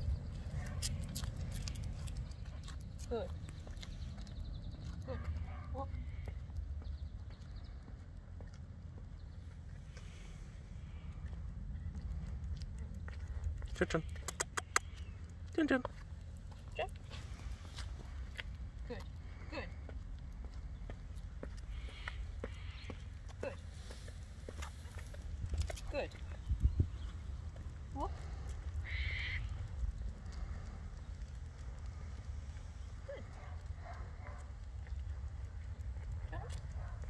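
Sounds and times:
steady low rumble: 0.0 - 37.0
footsteps on asphalt: 0.1 - 13.8, 15.7 - 19.2, 19.8 - 37.0.

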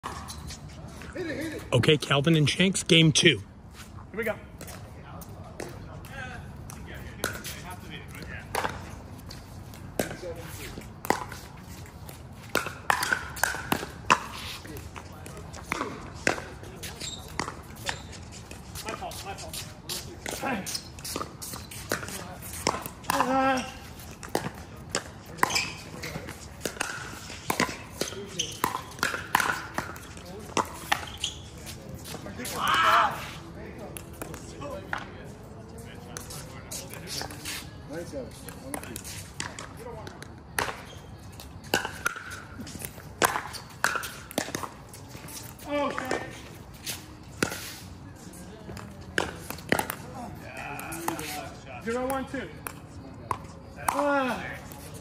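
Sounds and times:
shoes scuffing on court: 0.0 - 5.9, 6.7 - 52.1
paddles hitting plastic ball: 12.5 - 14.2, 26.6 - 31.1, 41.7 - 44.8.

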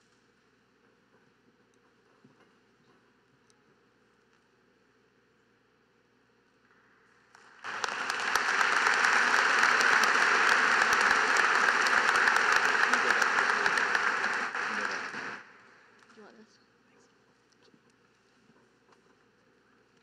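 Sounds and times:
audience applauding: 7.4 - 15.6.

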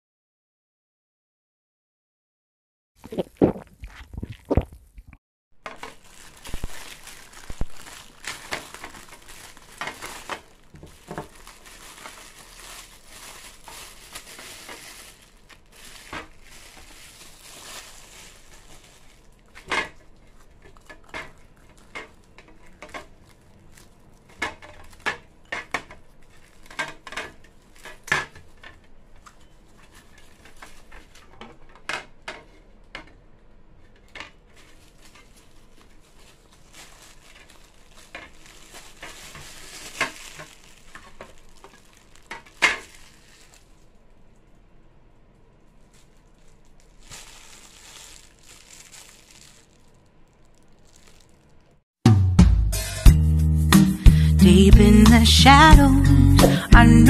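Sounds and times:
plastic wrapping crinkling: 5.6 - 51.8
faint crackly rustling: 5.6 - 51.9.

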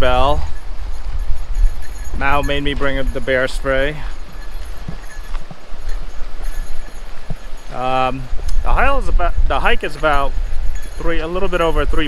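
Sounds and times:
footsteps on dirt trail: 0.0 - 12.0
wind buffeting microphone: 0.0 - 12.0.

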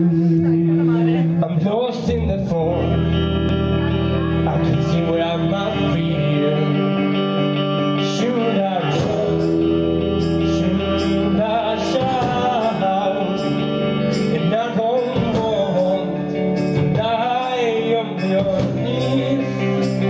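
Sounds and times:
live band playing: 0.0 - 20.0.

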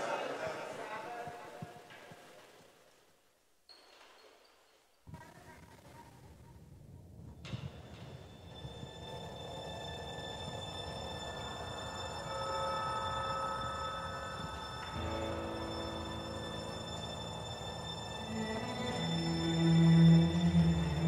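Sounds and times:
long held instrumental chords: 8.9 - 21.0.

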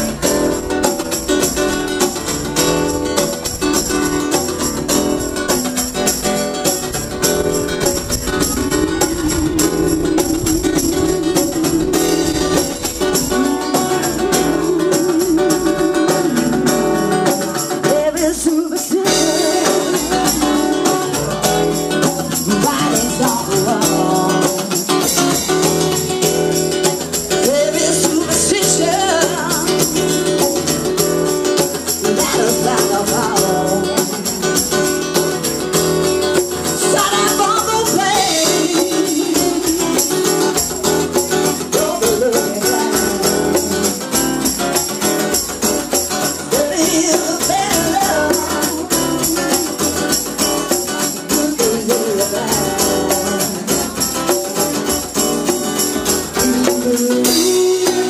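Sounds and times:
acoustic guitar: 0.0 - 58.0
drums: 0.0 - 58.0
woman singing into a microphone: 8.0 - 25.5, 27.1 - 34.9, 36.6 - 45.5, 46.2 - 58.0.

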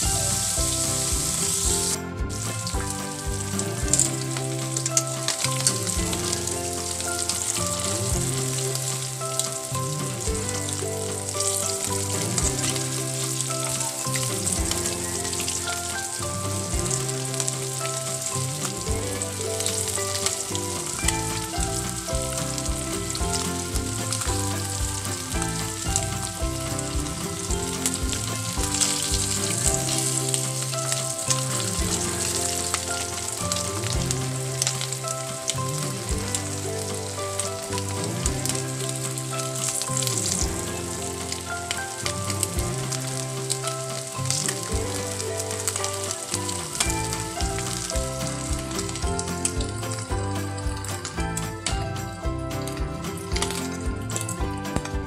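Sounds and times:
background music with bass line: 0.0 - 55.0.

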